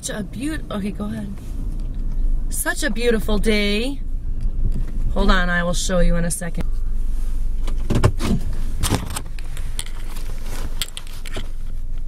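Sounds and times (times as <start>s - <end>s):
car cabin rumble: 0.0s - 12.0s
sleeve brushing over microphone: 6.6s - 7.6s, 10.0s - 11.9s
handheld camera rubbing and bumping: 7.6s - 12.0s.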